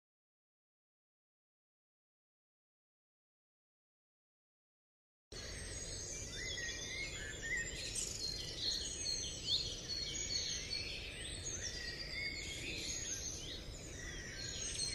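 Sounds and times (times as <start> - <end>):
songbirds singing: 5.3 - 14.9
low background noise: 5.4 - 14.9.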